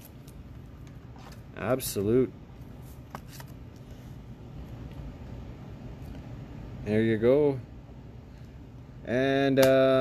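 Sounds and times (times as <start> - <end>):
low steady hum: 0.0 - 10.0
trading cards clicking and rustling: 3.0 - 3.9.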